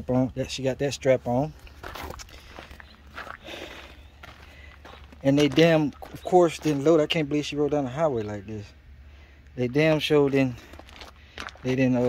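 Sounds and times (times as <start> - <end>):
steady low rumble: 0.0 - 12.0
footsteps on gravel and grass: 1.3 - 8.5, 9.6 - 12.0.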